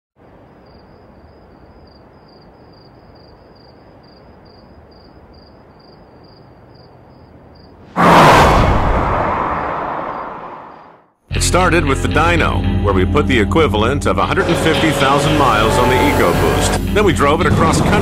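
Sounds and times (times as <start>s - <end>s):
insect chirping: 0.2s - 7.8s.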